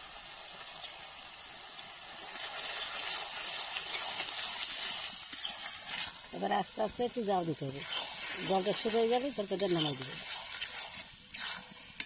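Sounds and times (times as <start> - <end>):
curry sizzling in a wok: 0.0 - 12.0
metal spoon scraping a pan: 2.2 - 6.3, 7.7 - 12.0.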